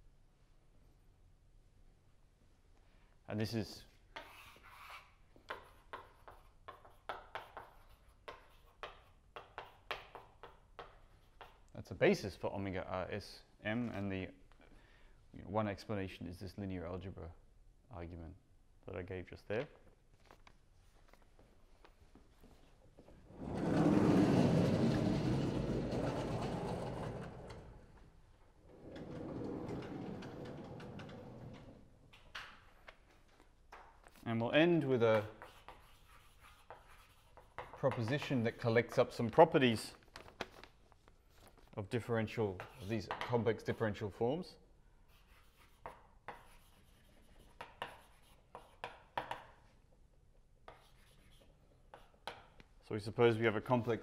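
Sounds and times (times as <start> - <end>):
chalk scratching on blackboard: 4.1 - 11.6, 34.9 - 38.5, 45.1 - 49.6, 50.7 - 52.4
sliding panels rumbling and rattling: 23.3 - 28.0, 28.7 - 31.9.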